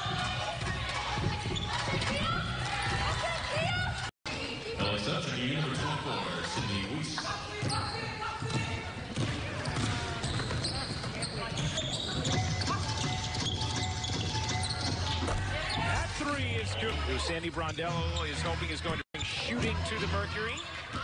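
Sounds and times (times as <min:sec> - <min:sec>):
shoes squeaking: 0:07.0 - 0:16.1
background music: 0:12.3 - 0:21.0.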